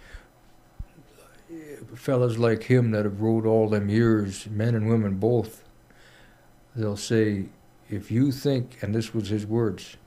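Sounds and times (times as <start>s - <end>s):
man speaking: 1.0s - 5.7s, 6.7s - 10.0s.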